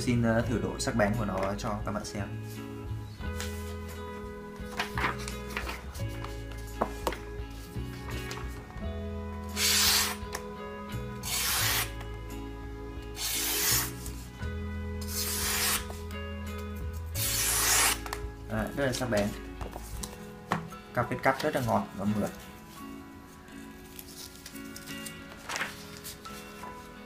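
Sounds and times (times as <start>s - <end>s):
background music: 0.0s - 27.0s
cleaver slicing paper: 9.5s - 10.2s, 11.2s - 11.9s, 13.2s - 14.0s, 15.0s - 15.9s, 17.2s - 18.2s.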